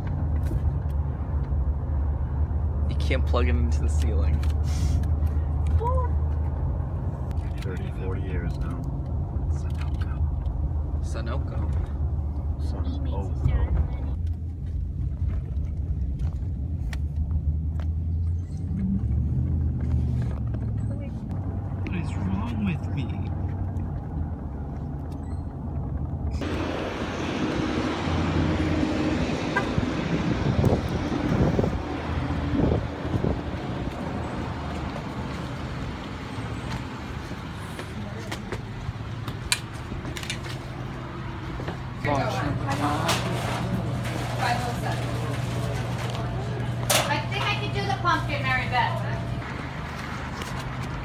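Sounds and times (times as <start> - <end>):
car engine and road rumble: 0.0 - 51.0
street noise hiss: 26.4 - 29.3
footsteps: 48.8 - 51.0.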